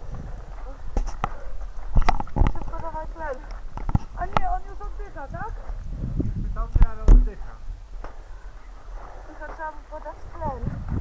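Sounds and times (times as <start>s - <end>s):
voices calling: 0.0s - 10.8s.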